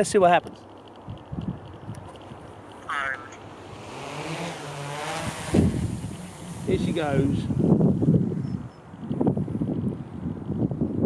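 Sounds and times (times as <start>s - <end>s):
drone propellers whirring: 2.8s - 9.4s.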